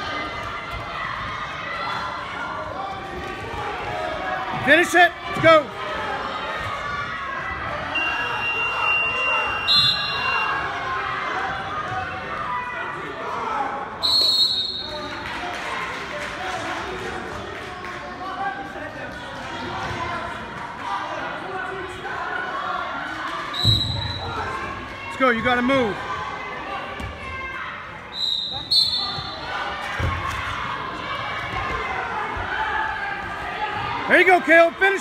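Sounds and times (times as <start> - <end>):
crowd chatter echoing in gym: 0.0 - 35.0.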